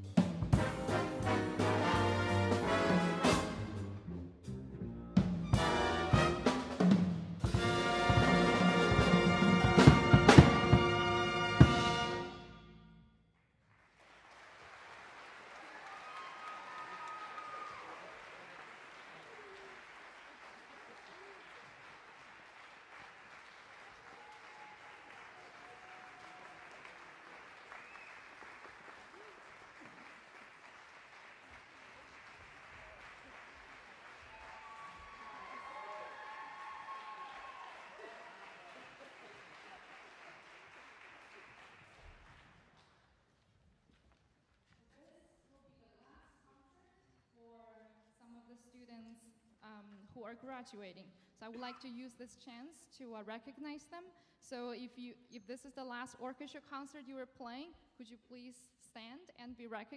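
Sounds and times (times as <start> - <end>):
audience applauding: 13.7 - 42.8.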